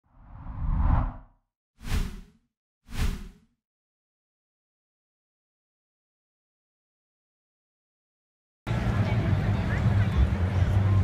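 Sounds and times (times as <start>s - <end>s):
whoosh sound effects: 0.2s - 3.4s.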